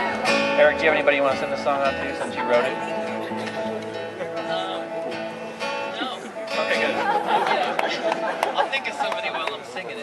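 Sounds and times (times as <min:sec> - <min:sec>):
people chattering in a hall: 0:00.0 - 0:10.0.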